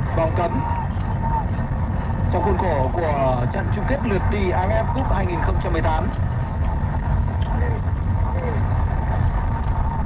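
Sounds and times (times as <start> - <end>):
car driving rumble inside cabin: 0.0 - 10.0
faint radio voices: 0.0 - 10.0.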